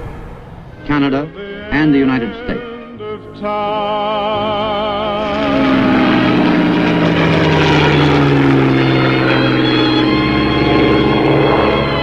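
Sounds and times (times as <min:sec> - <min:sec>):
background music: 0:00.0 - 0:12.0
propeller airplane flying overhead: 0:02.6 - 0:12.0.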